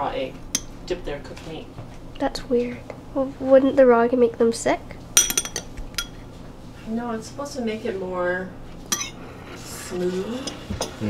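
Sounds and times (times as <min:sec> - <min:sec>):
metal spoon clinking on ceramic bowls: 0:00.5 - 0:00.8, 0:05.2 - 0:06.2, 0:08.9 - 0:09.2.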